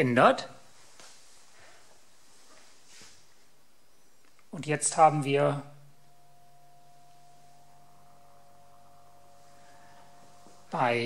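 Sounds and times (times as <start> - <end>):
faint electrical motor hum: 0.0 - 11.0.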